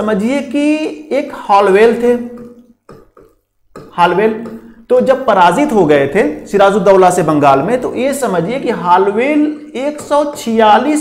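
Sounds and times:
man speaking: 0.0s - 2.6s, 3.9s - 11.0s.

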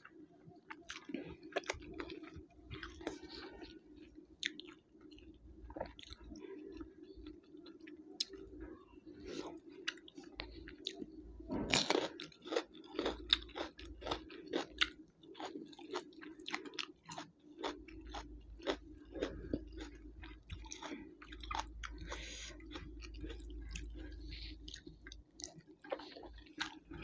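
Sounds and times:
close-up wet chewing: 0.0s - 27.0s
faint low hum: 0.0s - 27.0s.

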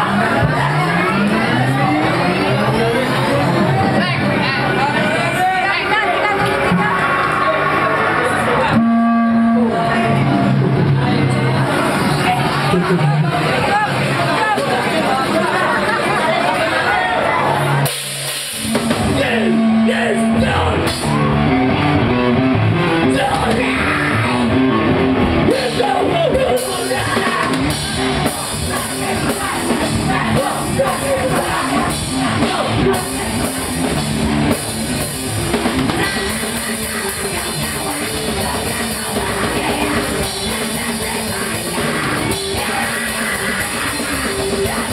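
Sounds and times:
electric guitars: 0.0s - 44.9s
drum and cymbal hits: 17.6s - 21.3s, 22.5s - 44.9s.

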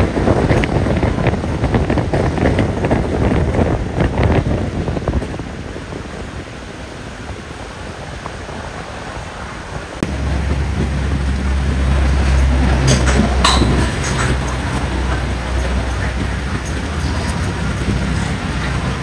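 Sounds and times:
outdoor ambience: 0.0s - 19.0s
wind on microphone: 0.0s - 19.0s.

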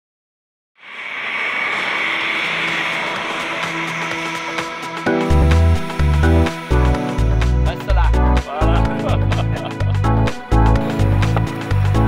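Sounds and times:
jet engines whining: 0.8s - 8.0s.

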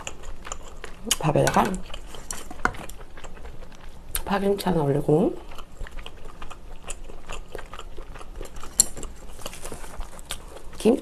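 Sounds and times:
soft chewing: 0.0s - 11.0s.

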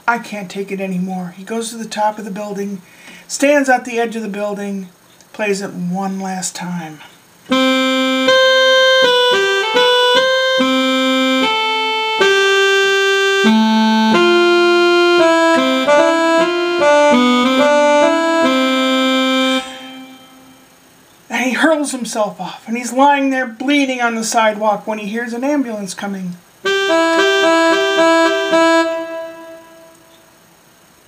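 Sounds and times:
electronic keyboard melody: 7.5s - 20.8s, 26.6s - 30.4s.

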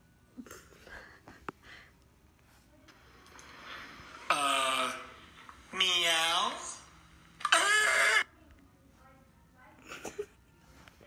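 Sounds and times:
person's shrill wordless cry: 7.5s - 8.3s.

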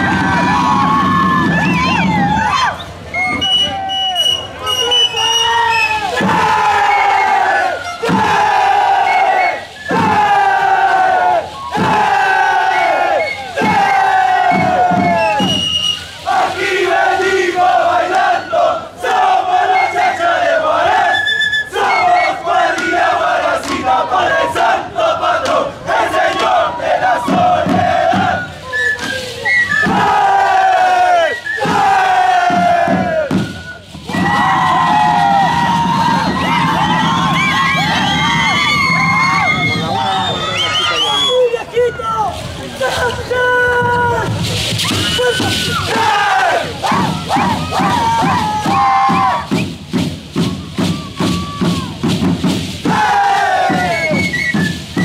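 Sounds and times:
group yelling in unison: 6.1s - 15.4s, 45.0s - 49.5s, 52.8s - 54.1s.

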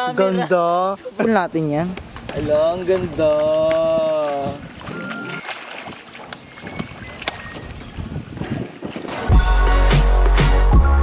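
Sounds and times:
pool water splashing: 0.0s - 10.6s
music with heavy bass beat: 9.3s - 11.0s.

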